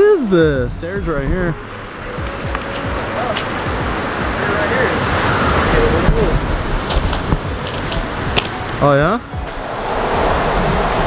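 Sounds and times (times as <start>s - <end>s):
ocean surf on rocks: 1.5s - 11.0s
steps on loose stones: 6.8s - 8.6s.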